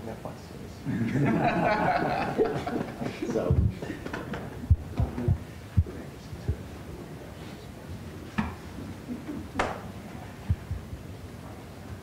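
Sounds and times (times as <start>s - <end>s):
hands patting backs: 9.6s - 9.9s.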